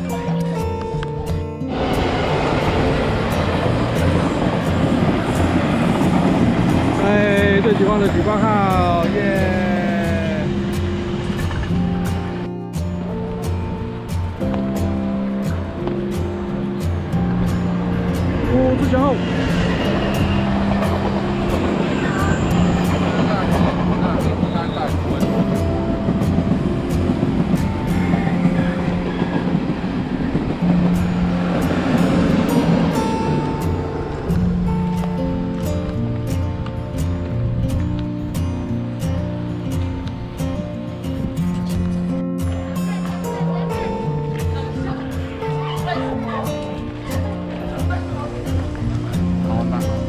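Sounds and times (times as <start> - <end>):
background music: 0.0 - 50.0
passing train rushing: 1.1 - 50.0.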